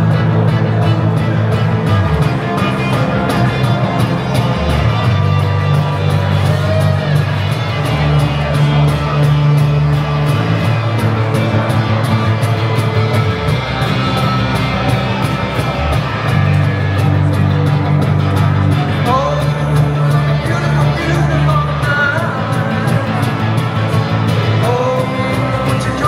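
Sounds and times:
cajon drum beat: 0.0 - 26.0
electric bass guitar: 0.0 - 26.0
strummed acoustic guitar: 0.0 - 26.0.

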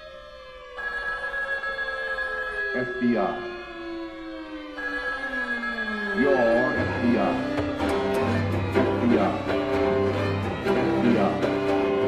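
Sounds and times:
string quartet music: 6.6 - 12.0.

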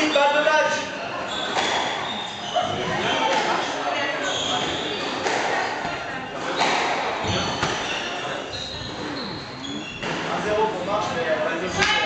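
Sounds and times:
squash racket strikes: 1.4 - 2.1, 4.6 - 8.0.

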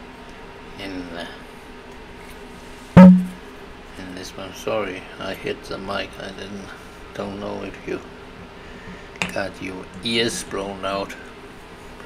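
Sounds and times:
microphone being knocked: 3.0 - 3.4.

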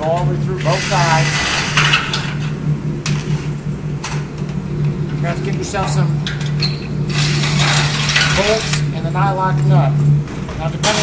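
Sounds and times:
cordless drill boring metal: 7.1 - 9.0.

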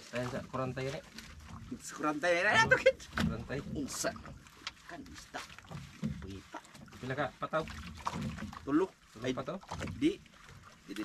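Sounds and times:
sharp splash: 0.0 - 11.0
water splashing and dripping: 0.0 - 11.0
person speaking: 2.1 - 4.2.

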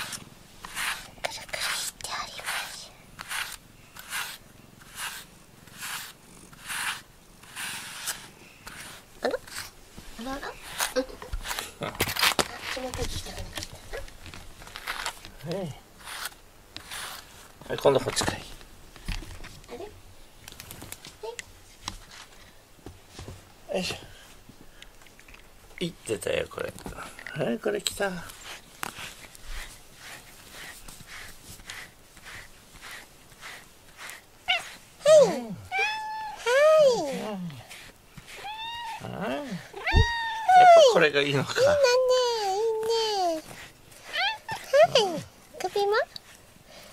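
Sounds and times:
brush rasping through cat fur: 0.0 - 15.3, 16.0 - 18.2, 28.0 - 46.9
cat meowing: 34.5 - 36.5, 38.3 - 40.9, 44.1 - 44.6.

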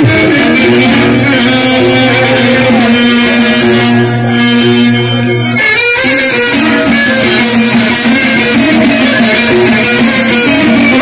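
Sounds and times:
live amplified band music: 0.0 - 11.0.

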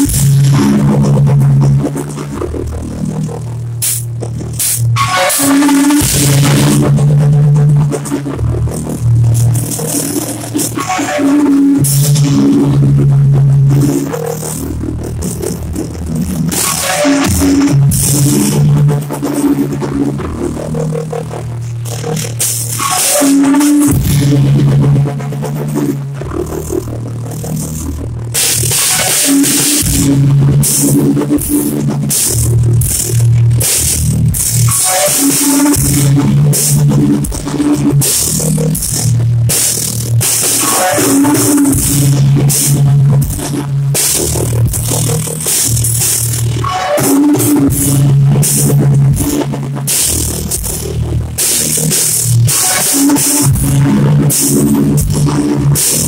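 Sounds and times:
distorted guitar and bass riff: 0.0 - 56.0
drums and crashing cymbals: 0.0 - 56.0.

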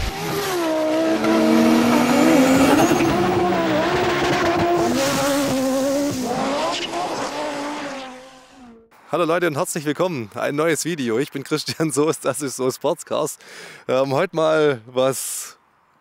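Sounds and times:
racing car engine running: 0.0 - 8.6.

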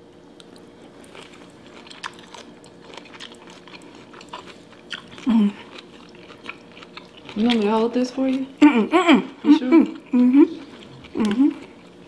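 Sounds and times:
person chewing food: 0.4 - 12.0.

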